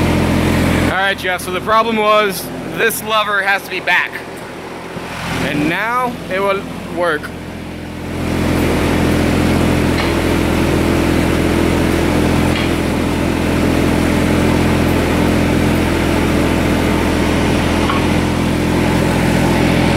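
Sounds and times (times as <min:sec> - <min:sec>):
diesel engine running: 0:00.0 - 0:19.9.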